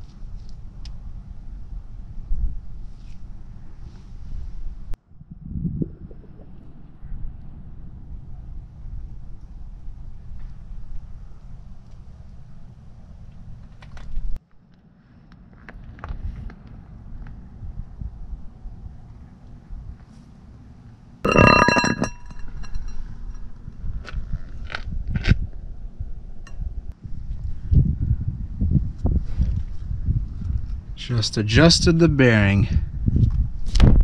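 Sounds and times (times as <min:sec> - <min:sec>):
wind rumble on microphone: 0:00.0 - 0:14.4, 0:15.7 - 0:20.1, 0:21.4 - 0:34.0.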